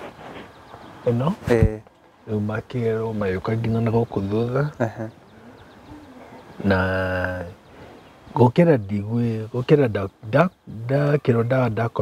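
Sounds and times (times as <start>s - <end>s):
faint low bird coo: 3.5s - 8.4s.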